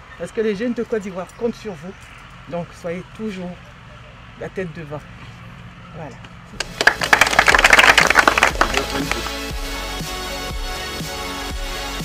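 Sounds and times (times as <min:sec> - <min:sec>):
group clapping: 0:06.6 - 0:09.7
background music: 0:06.8 - 0:12.0.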